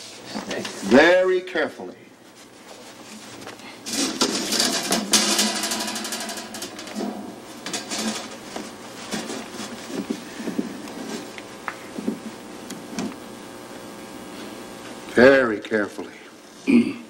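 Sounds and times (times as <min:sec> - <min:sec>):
rustling and clattering handling noise: 0:02.2 - 0:13.1.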